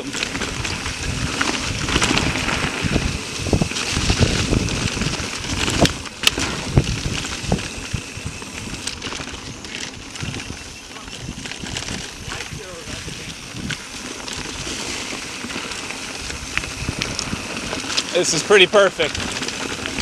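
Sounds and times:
bike knocks and rattles: 0:00.0 - 0:20.0
tyres rushing through leaves: 0:00.0 - 0:20.0.

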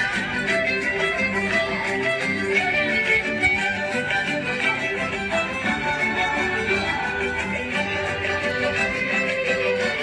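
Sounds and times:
guitar accompaniment: 0:00.0 - 0:10.0
violin: 0:00.0 - 0:10.0.

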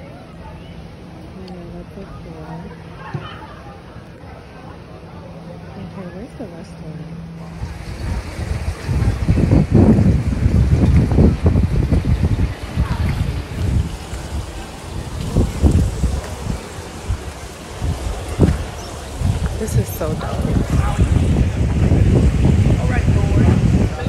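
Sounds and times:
wind buffeting microphone: 0:07.2 - 0:24.0.

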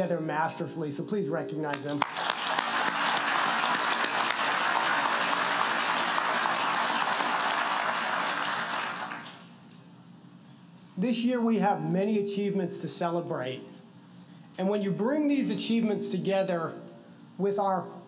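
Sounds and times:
audience applauding: 0:01.8 - 0:09.5.

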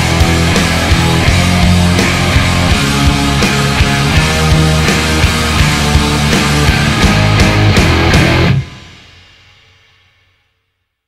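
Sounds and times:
rock band final chord ringing: 0:00.0 - 0:09.2.

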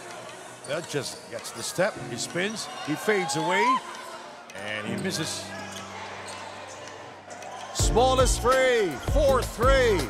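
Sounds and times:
basketball play on court: 0:00.0 - 0:09.9
crowd: 0:00.0 - 0:10.0.

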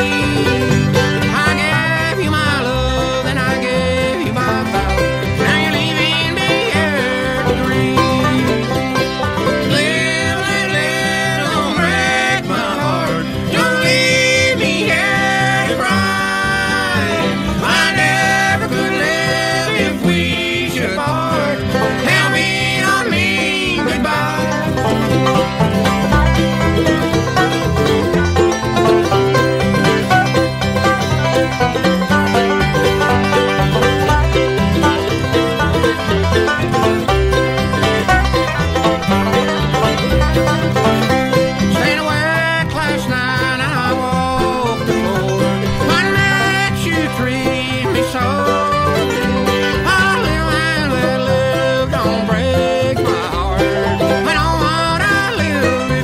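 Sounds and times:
banjo: 0:00.0 - 0:56.0
bluegrass band playing: 0:00.0 - 0:56.0.

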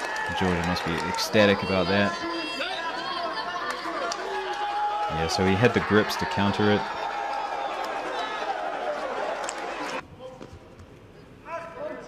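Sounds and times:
indistinct chatter of voices: 0:00.3 - 0:07.0.

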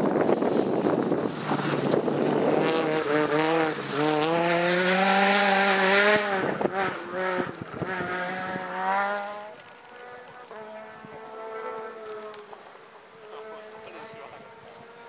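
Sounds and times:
rally car engine revving hard: 0:00.1 - 0:15.0.

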